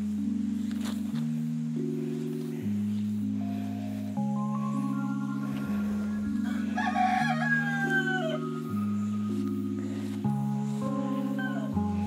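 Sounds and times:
background music: 0.0 - 12.0
rooster crowing: 5.9 - 8.8, 10.9 - 12.0.

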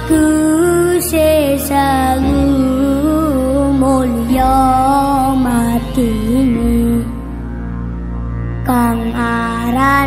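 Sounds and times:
person singing long sliding notes: 0.0 - 7.4
steady low drone: 0.0 - 10.0.

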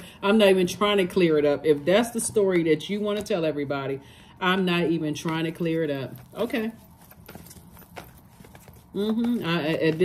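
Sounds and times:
cards being shuffled: 5.2 - 10.0.

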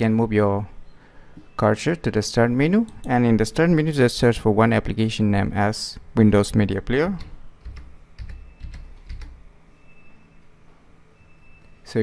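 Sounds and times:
computer keyboard keystrokes: 7.2 - 9.4.

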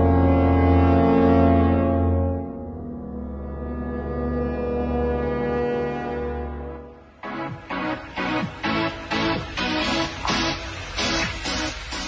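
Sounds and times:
deep horn-like drone chord: 0.0 - 7.1.

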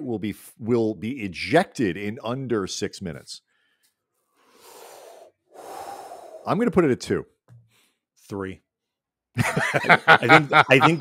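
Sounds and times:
man breathing into microphone: 3.5 - 6.5.

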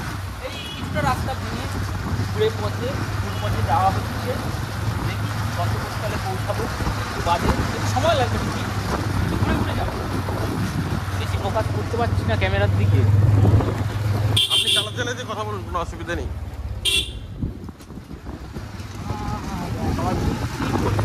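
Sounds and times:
wind and road noise: 0.0 - 21.0.

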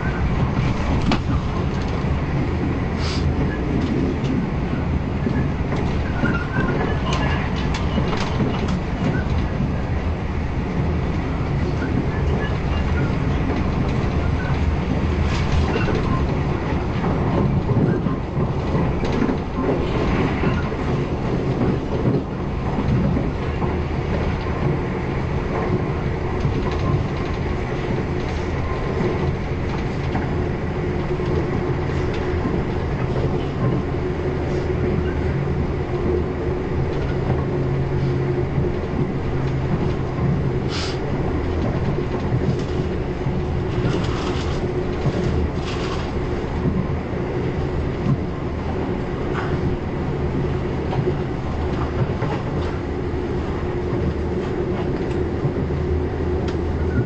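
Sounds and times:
train wheels rumbling on track: 0.0 - 57.0.

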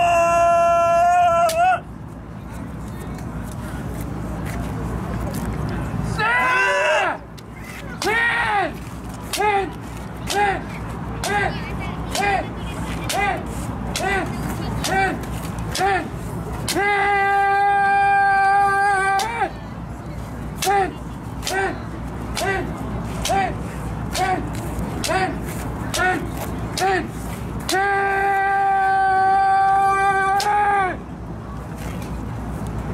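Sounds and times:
long held shout: 0.0 - 1.9, 6.1 - 7.2, 16.7 - 19.5, 27.7 - 31.0
bamboo sword striking: 13.9 - 16.0
person shouting short kiai: 16.7 - 19.5, 27.7 - 31.0.

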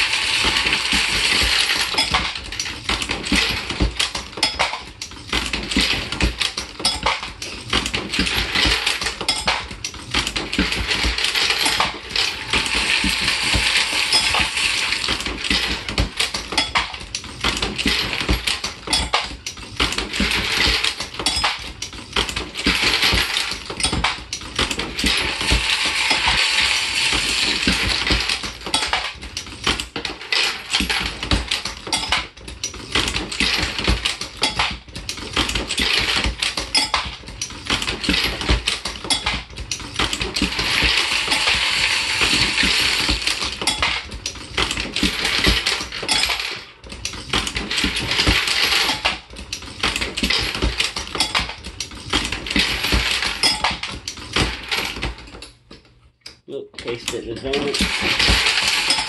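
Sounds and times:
bullets clattering in feeder: 0.0 - 55.6, 56.8 - 59.0.

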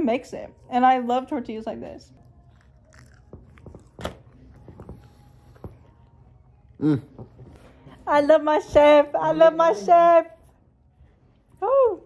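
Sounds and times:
person chewing food: 2.2 - 7.3.

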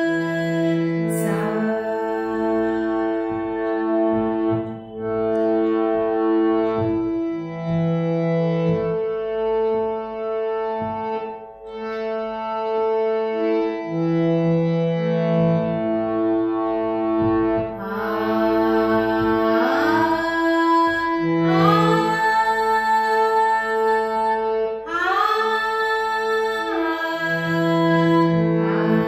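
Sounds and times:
woman singing: 0.0 - 3.7, 17.8 - 29.0
steady drone: 0.0 - 5.3
harmonium playing held notes: 0.0 - 29.0.

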